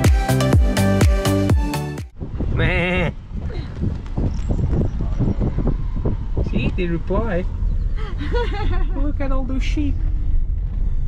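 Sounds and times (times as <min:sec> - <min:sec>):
low rumble of road noise: 0:02.1 - 0:11.0
wind buffeting microphone: 0:02.1 - 0:11.0.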